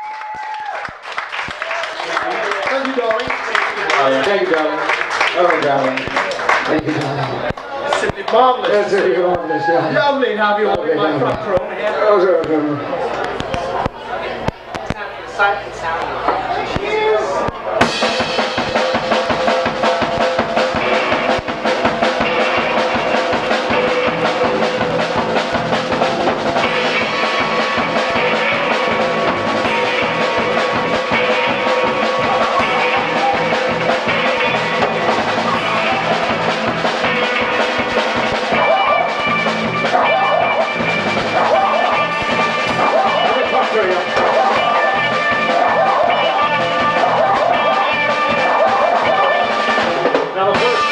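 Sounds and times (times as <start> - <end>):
live band playing: 16.1 - 50.9.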